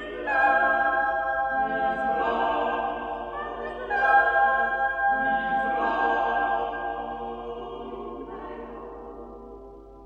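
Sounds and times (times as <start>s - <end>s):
unaccompanied choir singing: 0.0s - 9.8s.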